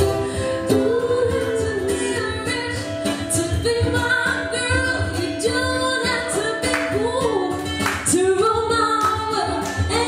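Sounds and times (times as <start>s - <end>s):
guitar accompaniment: 0.0s - 10.0s
woman singing: 0.0s - 10.0s.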